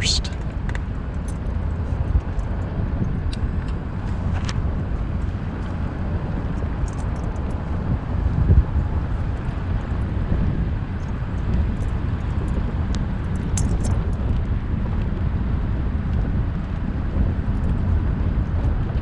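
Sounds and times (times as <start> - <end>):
car engine and tyres rumbling: 0.0 - 19.0.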